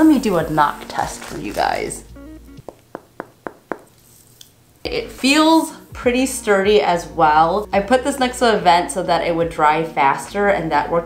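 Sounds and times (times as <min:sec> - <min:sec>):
knuckle knocks on hardened clay: 0:02.6 - 0:04.0.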